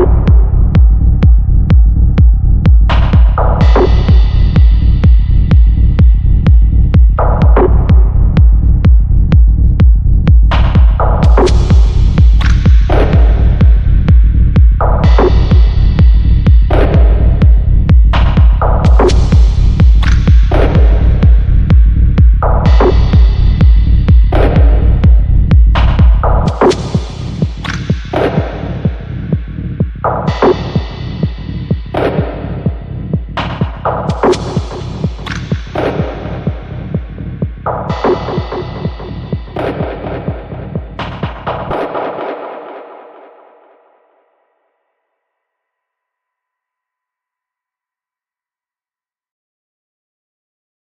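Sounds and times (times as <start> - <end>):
deep bass line: 0.0 - 42.5
kick-drum beat: 0.0 - 42.7.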